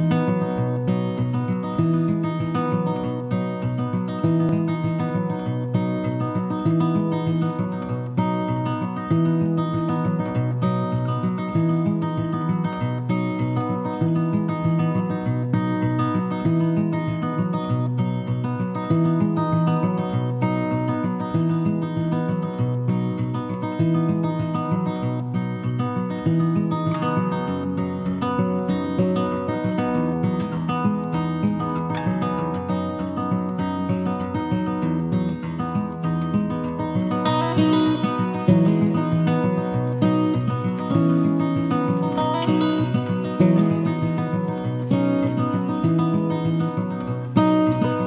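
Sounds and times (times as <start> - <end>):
acoustic guitar strumming chords: 0.0 - 48.0.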